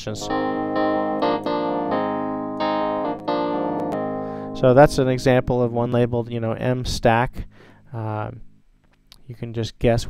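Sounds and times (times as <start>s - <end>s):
electric piano chords: 0.0s - 7.2s.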